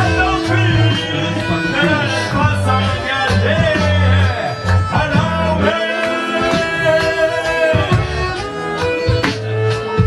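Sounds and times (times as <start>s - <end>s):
diatonic accordion playing: 0.0s - 10.0s
human beatbox rhythm: 0.0s - 10.0s.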